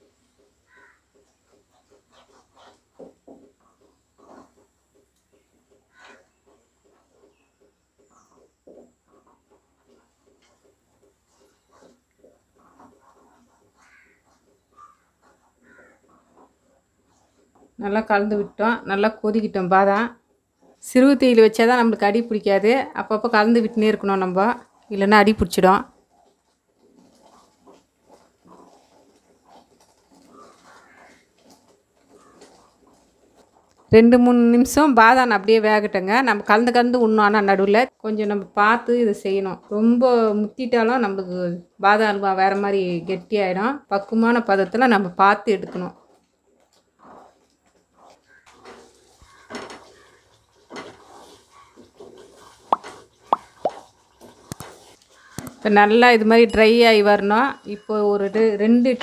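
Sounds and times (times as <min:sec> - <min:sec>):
wooden spatula stirring thick paste: 0:00.0 - 0:59.0.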